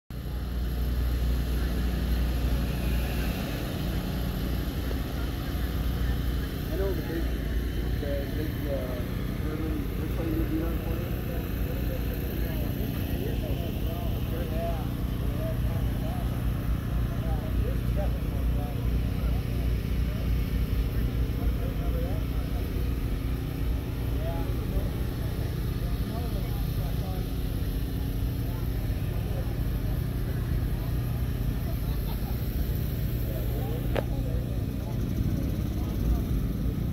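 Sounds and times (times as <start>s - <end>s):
low engine-like hum: 0.1s - 36.9s
people talking in background: 0.1s - 36.9s.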